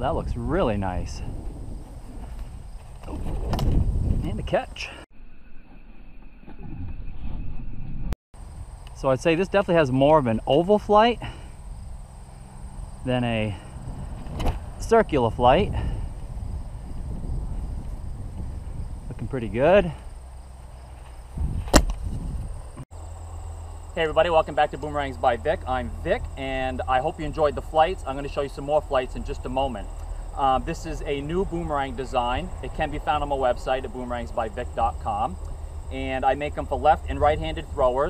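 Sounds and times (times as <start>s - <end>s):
wind rumble on microphone: 0.0s - 5.0s, 11.3s - 22.8s, 29.7s - 38.0s
sharp slap: 21.6s - 22.0s.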